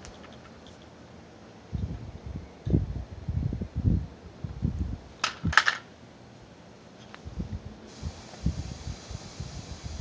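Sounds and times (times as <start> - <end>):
toy car clattering on concrete: 5.2 - 5.9.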